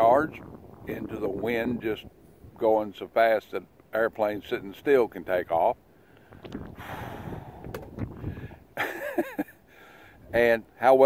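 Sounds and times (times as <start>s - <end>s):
wind buffeting microphone: 0.0s - 2.9s, 6.3s - 8.7s.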